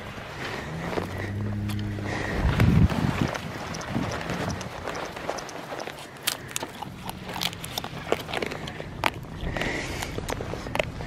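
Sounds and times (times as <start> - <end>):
footsteps scuffling on grass: 0.0 - 8.7.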